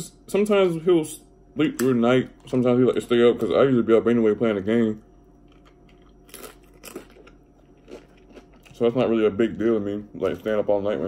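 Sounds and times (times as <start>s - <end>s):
chicken wings being chewed: 5.5s - 8.8s.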